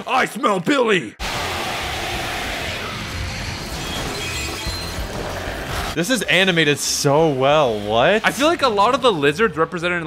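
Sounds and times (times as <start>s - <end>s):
dramatic cartoon music: 1.2s - 9.9s
crashing shattering sound effects: 2.7s - 6.0s.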